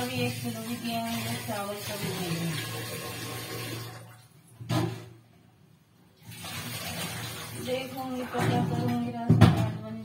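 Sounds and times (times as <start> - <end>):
water running from tap: 0.0 - 4.4, 6.2 - 9.1.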